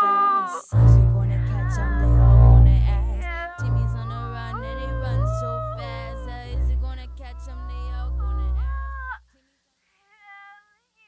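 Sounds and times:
song final chord: 0.7s - 9.0s.

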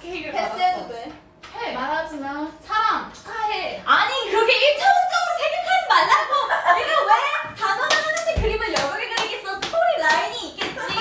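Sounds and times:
women laughing and calling out: 5.0s - 7.6s
sharp hand claps: 7.8s - 11.0s.

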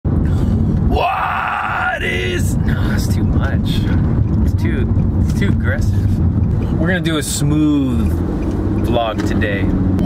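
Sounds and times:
car cabin rumble: 0.1s - 10.0s.

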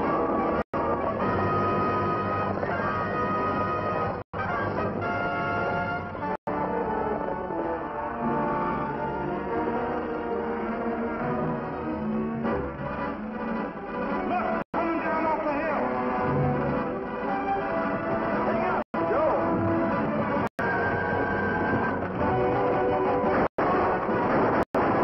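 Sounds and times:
orchestral film score: 0.0s - 25.0s.

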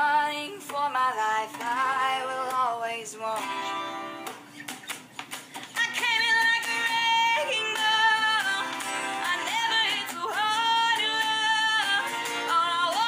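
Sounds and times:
woman singing a pop ballad: 0.0s - 4.1s, 5.8s - 13.0s
acoustic guitar: 0.0s - 13.0s.

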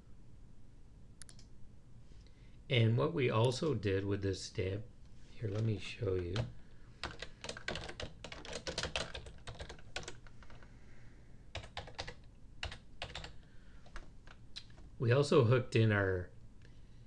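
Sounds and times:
typing on computer keyboard: 5.5s - 10.6s, 11.5s - 14.4s.

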